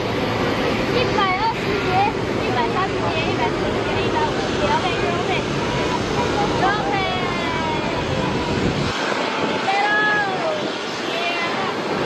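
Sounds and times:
jet engines rumbling: 0.0 - 12.0
people talking: 0.9 - 8.4, 9.2 - 12.0.

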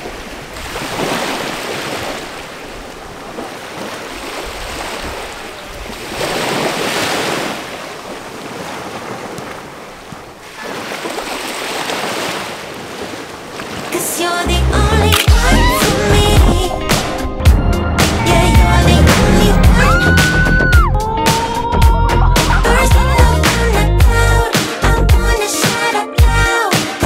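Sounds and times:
small waves washing on shore: 0.0 - 14.5.

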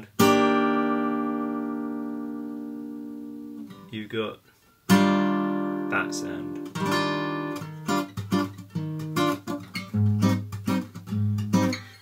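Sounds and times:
acoustic guitar chord ringing: 0.0 - 3.9, 4.9 - 12.0.

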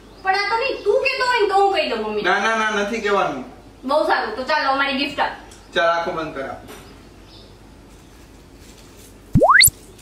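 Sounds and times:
rising synthetic tone sweep: 9.4 - 9.7.

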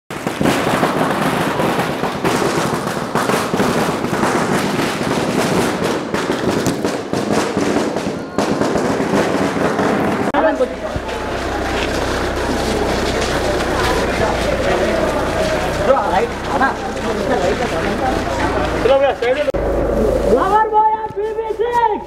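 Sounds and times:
firecrackers crackling: 0.1 - 22.0
people's voices: 7.8 - 22.0.

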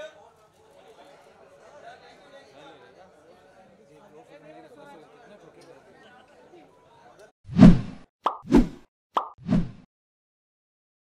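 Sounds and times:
click and pop sound effect: 7.6 - 9.8.

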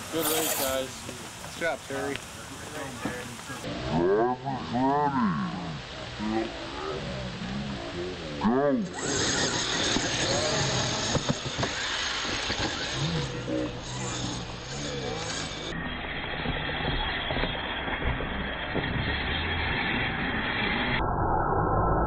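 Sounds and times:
rc trucks running on dirt: 0.0 - 4.0, 4.6 - 21.0.

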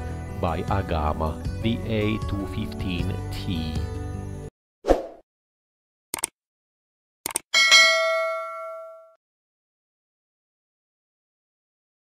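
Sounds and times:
bright bell chime: 7.6 - 9.2.

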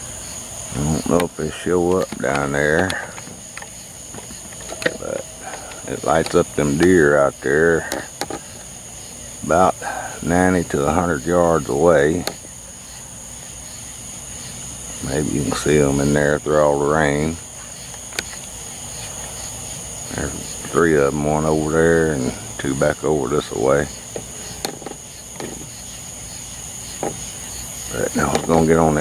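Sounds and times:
crickets trilling: 0.0 - 29.0
night insects chorusing: 0.0 - 29.0.

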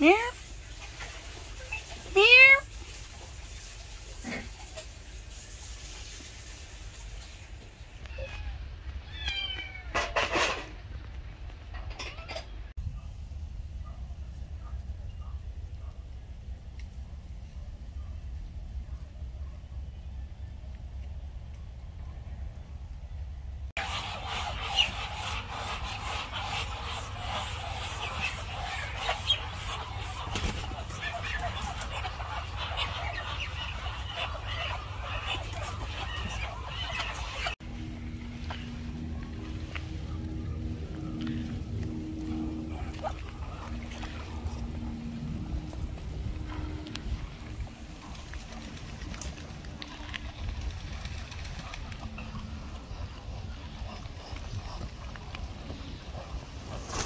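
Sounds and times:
kitten meowing: 9.1 - 9.9
steady low rumble: 12.8 - 56.9
poultry calling: 23.8 - 37.6.

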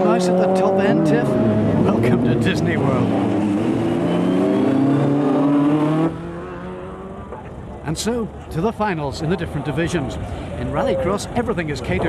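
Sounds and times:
car engine revving hard: 0.0 - 7.2.

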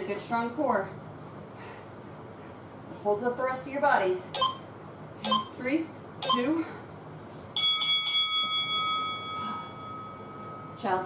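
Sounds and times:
timer bell ringing: 7.6 - 11.0.

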